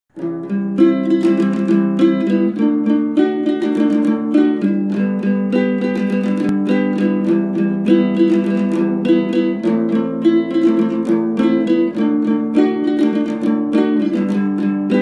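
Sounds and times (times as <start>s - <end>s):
small guitar plucked melody: 0.1s - 15.0s.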